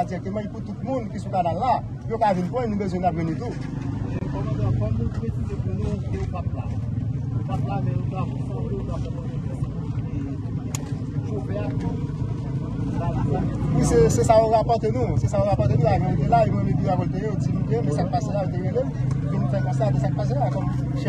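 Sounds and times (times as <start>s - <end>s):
vehicle engine rumble: 0.0s - 21.0s.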